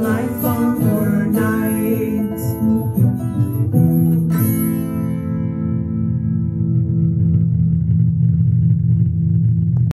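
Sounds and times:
electric guitar note ringing: 0.0 - 9.9.

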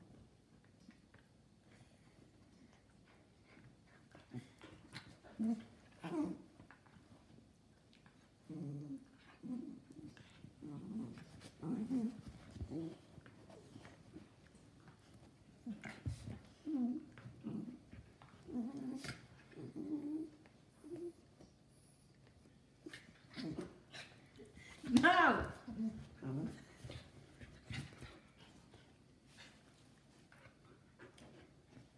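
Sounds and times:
dogs growling and grumbling: 4.1 - 7.0, 8.0 - 21.3, 22.8 - 28.3
dogs scuffling on a couch: 10.3 - 20.2.

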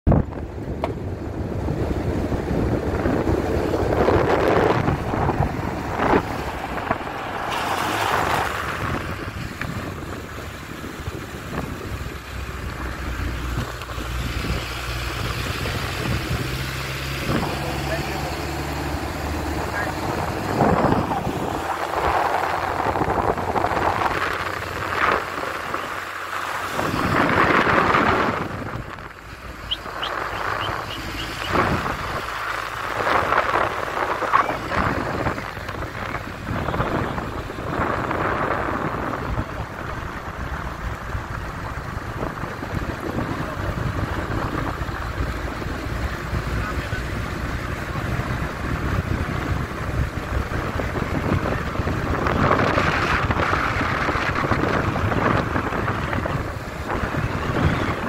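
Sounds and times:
car road and engine noise: 0.0 - 58.0
wind buffeting microphone: 0.1 - 58.0.

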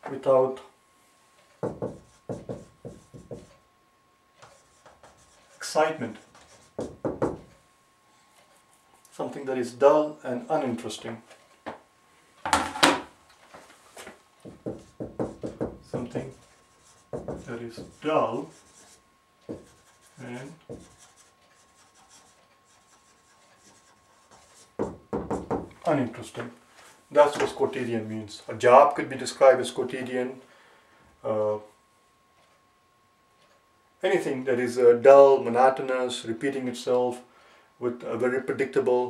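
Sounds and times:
marker knocking on whiteboard: 1.6 - 3.6, 6.4 - 7.5, 14.4 - 16.2, 16.8 - 18.0, 19.5 - 20.0, 20.7 - 21.1, 23.8 - 25.8
marker scratching on whiteboard: 1.6 - 3.6, 4.4 - 7.5, 14.6 - 25.0.

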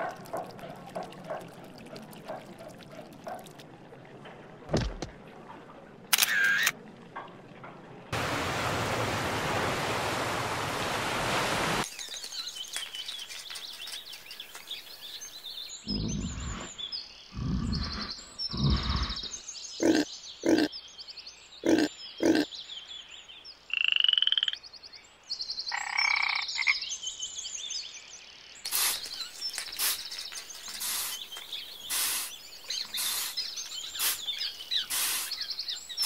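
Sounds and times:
frogs trilling and croaking: 19.8 - 20.7, 21.6 - 22.5.

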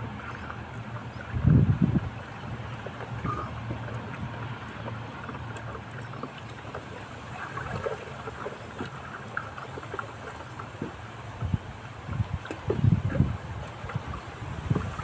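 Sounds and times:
liquid sloshing in bucket: 0.0 - 15.0.

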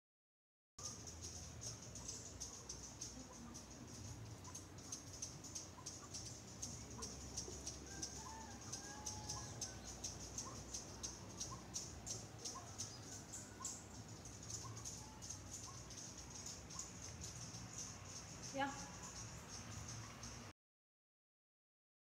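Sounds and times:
insect chorus: 0.8 - 20.5.

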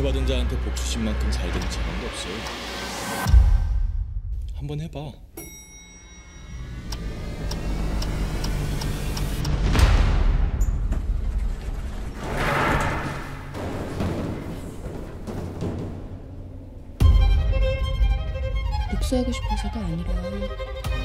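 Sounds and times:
dramatic trailer score: 0.0 - 5.2, 6.2 - 21.0.

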